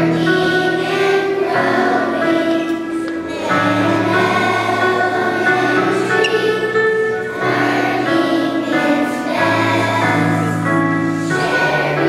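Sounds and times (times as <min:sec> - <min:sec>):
children's choir singing: 0:00.0 - 0:12.0
instrumental accompaniment: 0:00.0 - 0:12.0.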